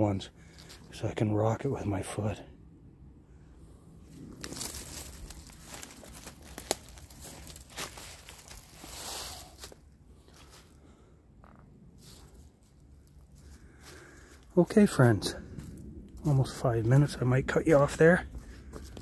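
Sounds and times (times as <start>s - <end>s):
footsteps on dry leaves: 4.0s - 10.8s, 12.0s - 14.5s, 18.3s - 19.0s.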